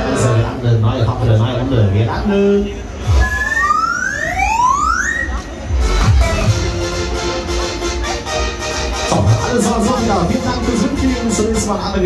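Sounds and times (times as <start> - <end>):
siren-like electronic tones sweeping up: 3.0 - 5.5
low bass music: 5.3 - 12.0.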